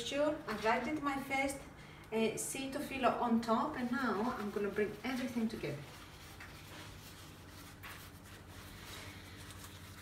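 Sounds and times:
pastry and paper rustling: 3.8 - 10.0.

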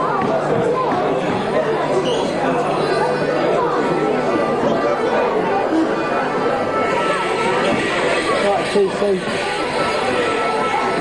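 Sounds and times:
crowd chatter in echoing hall: 0.0 - 11.0.

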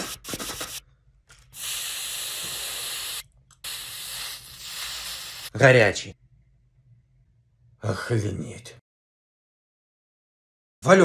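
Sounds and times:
steam iron hissing: 1.6 - 5.5.

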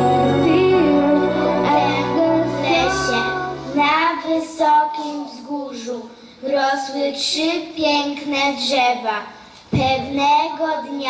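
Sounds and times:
children singing: 0.0 - 3.8
instrumental accompaniment: 0.0 - 4.0.

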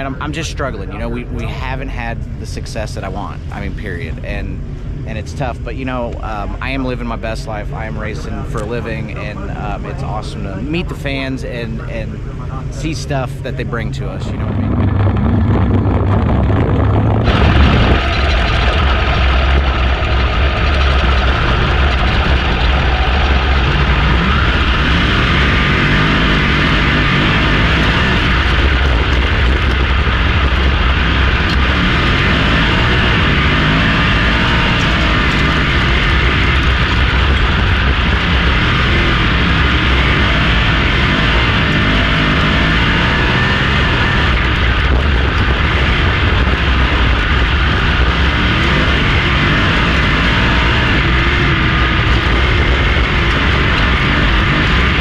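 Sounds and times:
racing car engines: 0.0 - 55.0.

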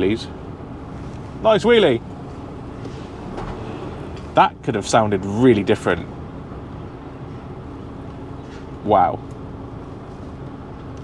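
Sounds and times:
diesel lorry engine: 0.0 - 11.0
road noise: 0.0 - 11.0.

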